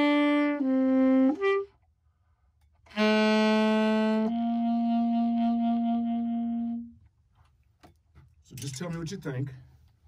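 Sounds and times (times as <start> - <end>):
tenor saxophone long note: 0.0 - 1.8, 2.9 - 7.0.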